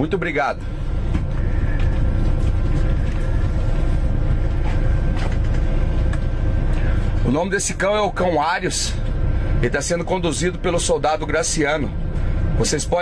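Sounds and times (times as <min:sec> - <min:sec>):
bus engine idling: 0:00.0 - 0:13.0
faint steady hum: 0:00.0 - 0:13.0.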